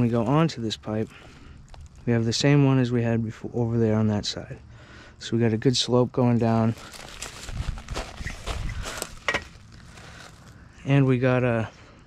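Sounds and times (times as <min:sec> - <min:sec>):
crunching on crushed stone: 0:06.4 - 0:10.6.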